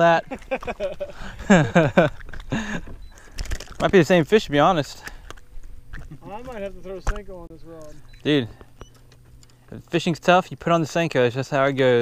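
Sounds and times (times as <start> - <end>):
man laughing: 0.0 - 3.0.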